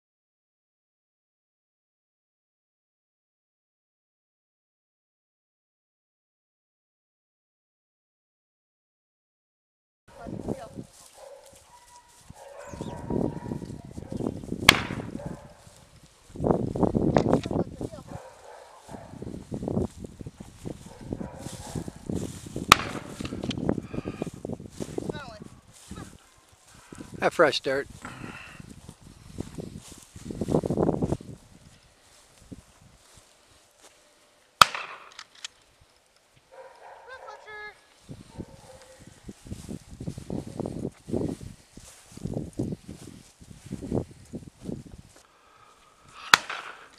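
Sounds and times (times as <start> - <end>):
footsteps crunching through dry grass: 10.1 - 46.9
gunshot: 14.6 - 15.2, 22.7 - 23.4, 34.6 - 35.2, 46.2 - 46.9
sharp crack: 14.6 - 15.2, 22.6 - 23.6, 34.6 - 36.2, 46.2 - 46.9.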